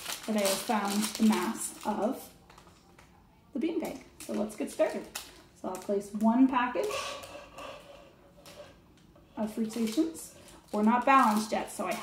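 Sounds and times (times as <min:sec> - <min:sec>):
packet rustling into plastic cup: 0:00.0 - 0:03.1, 0:09.6 - 0:12.0.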